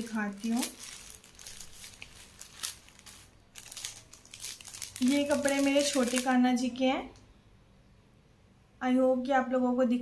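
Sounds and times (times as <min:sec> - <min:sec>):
plastic packets crinkling: 0:00.0 - 0:06.4.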